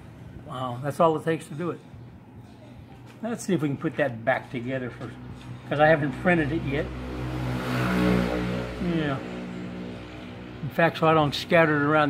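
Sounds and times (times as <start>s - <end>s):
vehicle engine passing by: 4.8s - 12.0s.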